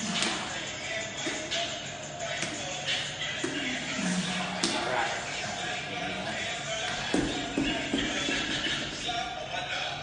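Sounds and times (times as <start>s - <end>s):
music playing: 0.0s - 10.0s.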